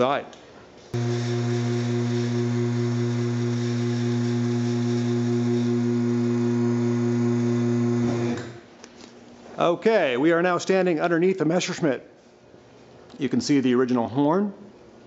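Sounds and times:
car lift pump motor humming: 1.0s - 8.6s.

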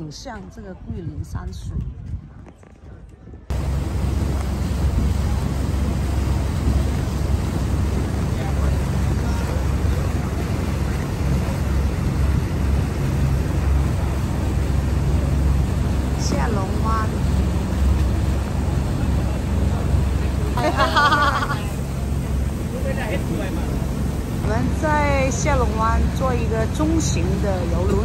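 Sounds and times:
rushing wind: 0.0s - 28.0s
boat engine droning: 3.5s - 28.0s
water rushing past boat: 3.5s - 28.0s.

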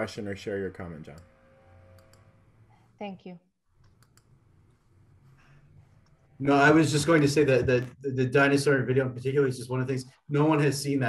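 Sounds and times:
computer clicks: 1.9s - 2.3s, 3.8s - 4.3s.

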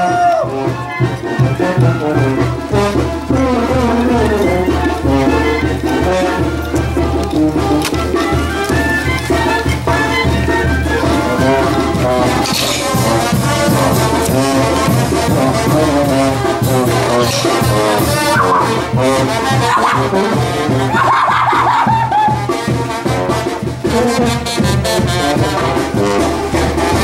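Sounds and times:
brass band playing dance music: 0.0s - 27.0s.

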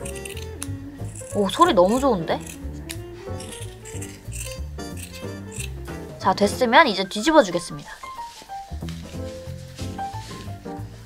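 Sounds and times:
scissors snipping fabric: 0.0s - 6.0s
background music: 0.0s - 11.0s.

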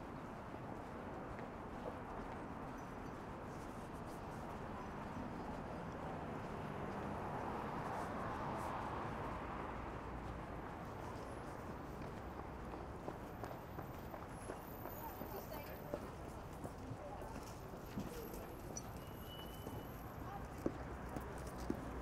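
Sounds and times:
footsteps on sidewalk: 0.0s - 22.0s
road traffic hum: 0.0s - 22.0s.

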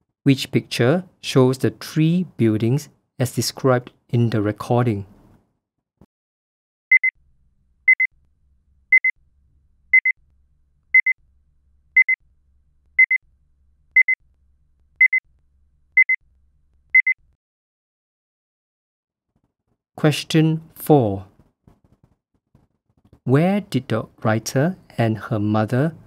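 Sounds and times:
electronic timer double beeps: 6.9s - 7.1s, 7.9s - 8.1s, 8.9s - 9.1s, 9.9s - 10.2s, 11.0s - 11.2s, 12.0s - 12.2s, 13.0s - 13.2s, 14.0s - 14.2s, 15.0s - 15.2s, 16.0s - 16.2s, 17.0s - 17.2s.

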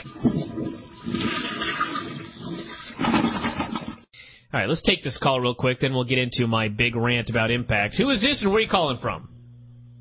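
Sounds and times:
toilet flushing: 0.0s - 4.1s.

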